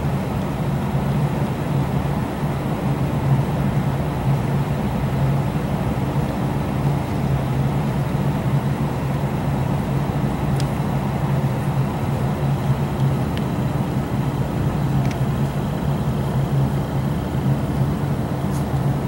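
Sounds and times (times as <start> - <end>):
low mechanical hum: 0.0 - 19.0
faint light clicks: 10.6 - 10.8, 15.0 - 15.2.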